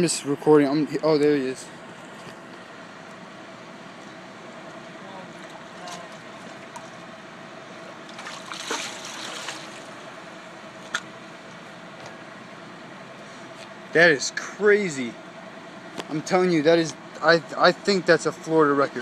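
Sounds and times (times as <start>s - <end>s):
steady background hum: 0.0s - 19.0s
water lapping: 7.9s - 10.1s
fish splashing at surface: 8.1s - 9.9s.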